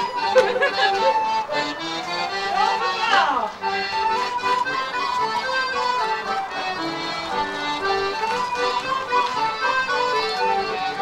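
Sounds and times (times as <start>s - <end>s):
accordion playing dance tune: 0.0s - 11.0s.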